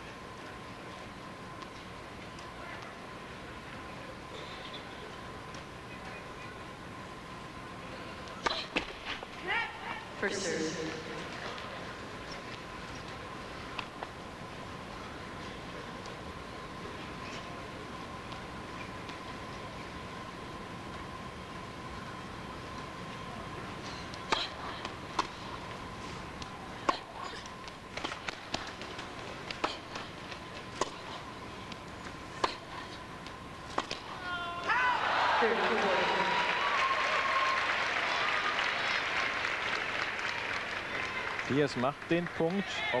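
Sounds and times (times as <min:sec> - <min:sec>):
crowd shouts: 0:34.2 - 0:38.8
crowd cheering and applauding: 0:34.7 - 0:43.0.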